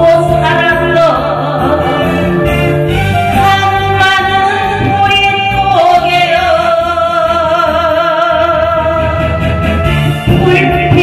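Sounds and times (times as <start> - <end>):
musical accompaniment: 0.0 - 11.0.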